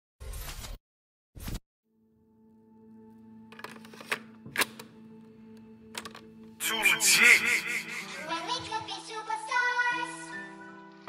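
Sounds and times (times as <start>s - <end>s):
low synth drone: 6.6s - 8.3s.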